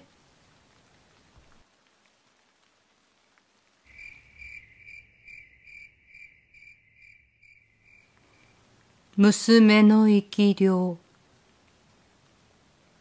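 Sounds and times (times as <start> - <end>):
cricket chirping: 3.9 - 8.7.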